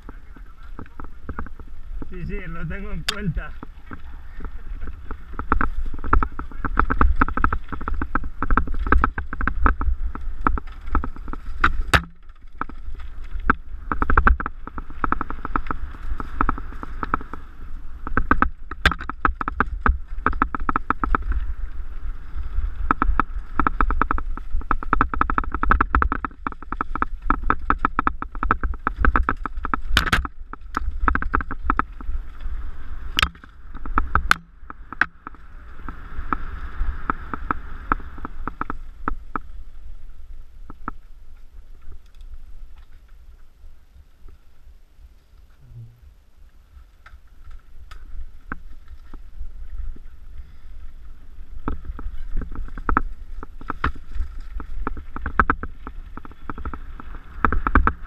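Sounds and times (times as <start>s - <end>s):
bike rattling over stones: 0.0s - 45.6s, 46.4s - 58.0s
low rumble: 45.6s - 46.4s.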